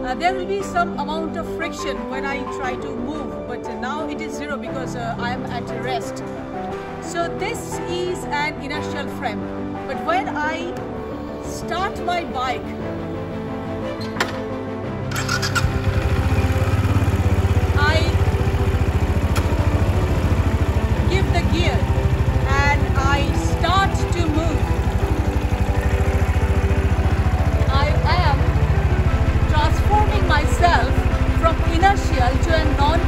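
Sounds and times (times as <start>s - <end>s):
motorcycle engine starting and idling: 10.8s - 33.0s.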